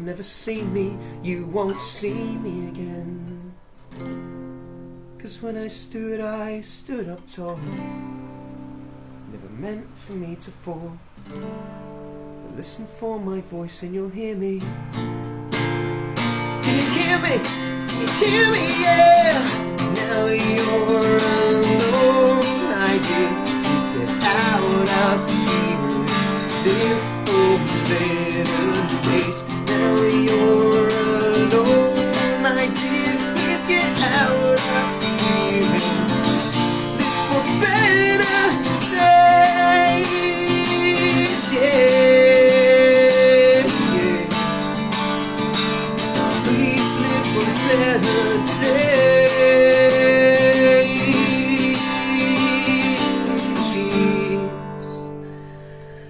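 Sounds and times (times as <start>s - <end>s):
man singing long notes: 0.0s - 3.6s, 16.6s - 44.8s, 46.1s - 55.1s
strummed acoustic guitar: 0.0s - 56.0s.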